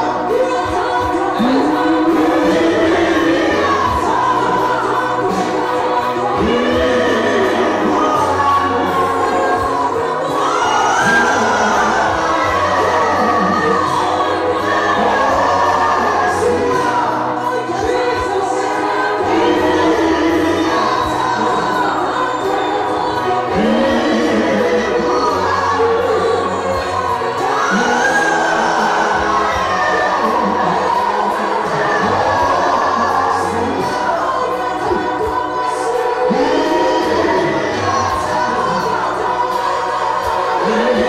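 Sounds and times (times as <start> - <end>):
congregation singing gospel song: 0.0 - 41.0.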